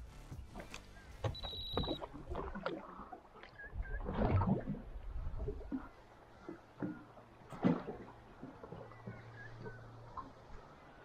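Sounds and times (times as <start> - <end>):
water splashing against boat hull: 0.4 - 11.0.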